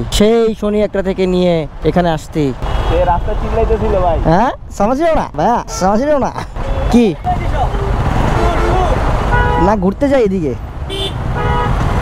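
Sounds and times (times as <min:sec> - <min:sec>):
traffic jam engines rumbling: 0:00.0 - 0:12.0.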